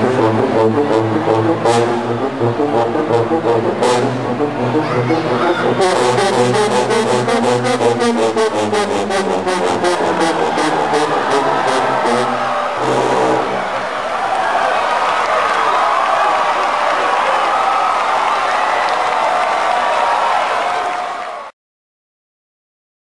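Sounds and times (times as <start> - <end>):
low brass band passage: 0.0 - 13.9
crowd cheering and applauding: 0.0 - 21.6.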